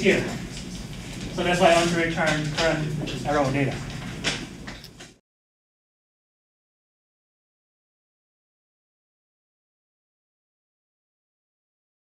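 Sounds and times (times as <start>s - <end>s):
room noise: 0.0s - 5.2s.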